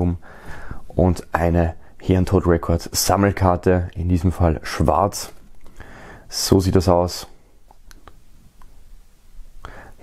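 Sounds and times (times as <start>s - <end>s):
man talking: 0.0s - 5.4s, 6.3s - 7.4s
low room noise: 0.0s - 10.0s
faint small clicks: 7.7s - 8.8s.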